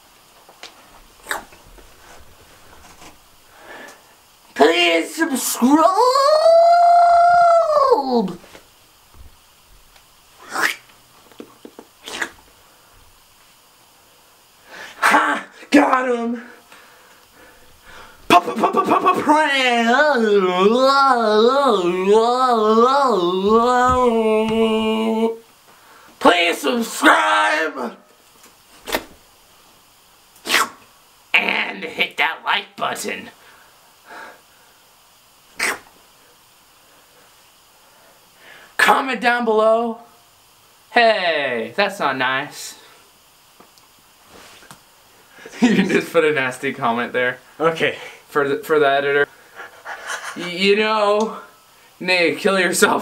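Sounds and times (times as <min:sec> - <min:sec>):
person breathing: 0:03.5 - 0:04.2, 0:14.6 - 0:15.0, 0:16.4 - 0:18.3, 0:25.7 - 0:26.2, 0:33.4 - 0:34.8, 0:36.9 - 0:38.8
person sneezing: 0:10.4 - 0:10.8, 0:12.0 - 0:12.4, 0:30.4 - 0:30.8, 0:35.6 - 0:35.9.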